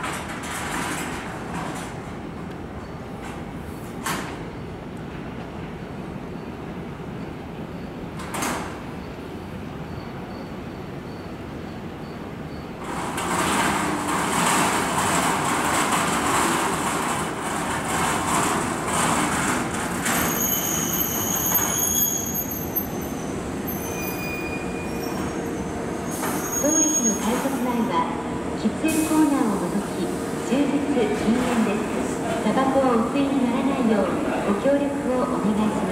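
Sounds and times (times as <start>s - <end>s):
train wheels rumbling on rails: 0.0s - 35.9s
high brake squeals: 20.0s - 27.7s.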